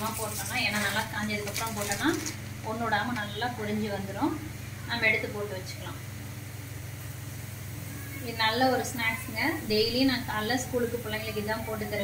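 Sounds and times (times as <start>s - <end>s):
hot oil sizzling: 0.0s - 12.0s.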